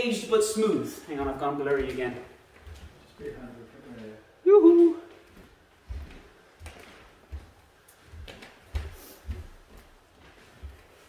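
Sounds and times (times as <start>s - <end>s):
bare feet on wooden floor: 0.0s - 11.0s.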